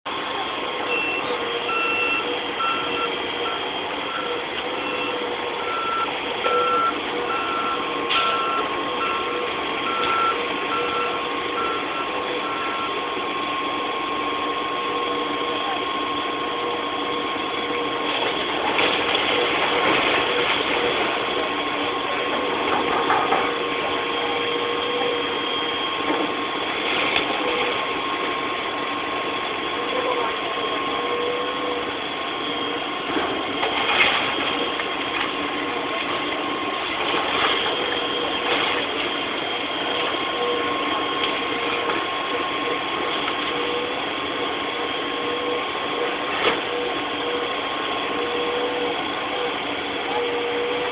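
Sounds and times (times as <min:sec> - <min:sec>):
heavy vehicle engines droning: 0:00.1 - 0:50.9
reversing alarm beeping: 0:00.1 - 0:50.9
steady whine: 0:00.1 - 0:50.9.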